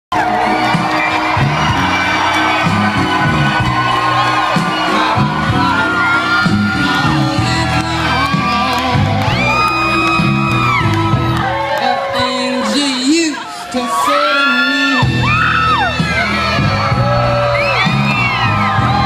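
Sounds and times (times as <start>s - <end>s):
crowd cheering and whistling: 0.1s - 19.0s
live rock band playing: 0.1s - 19.0s.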